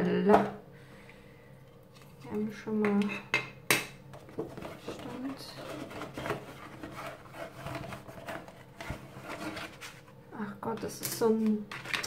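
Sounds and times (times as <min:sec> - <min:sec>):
packaging rustling and scraping: 0:04.2 - 0:10.2, 0:11.2 - 0:12.0.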